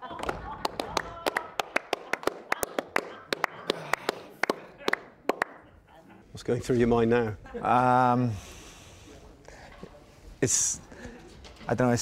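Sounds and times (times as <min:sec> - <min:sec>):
people clapping: 0:00.0 - 0:05.7.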